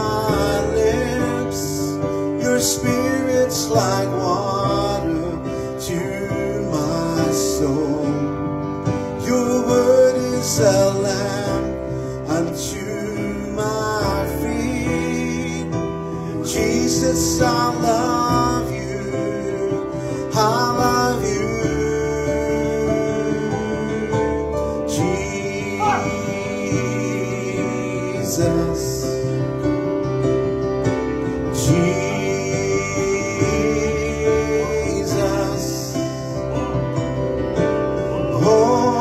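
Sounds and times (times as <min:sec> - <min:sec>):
keyboard sustained chords: 0:00.0 - 0:39.0
soft worship band music: 0:00.0 - 0:39.0
person singing wavering voice: 0:24.9 - 0:28.8.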